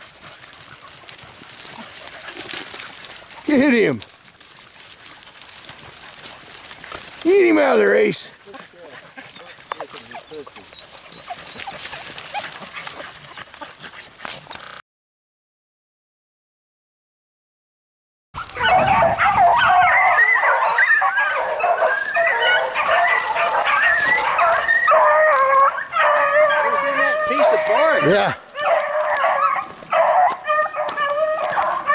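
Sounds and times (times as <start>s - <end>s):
dogs rustling through dry brush: 0.0s - 14.8s, 18.4s - 31.9s
hounds baying: 0.0s - 14.8s, 18.4s - 31.9s.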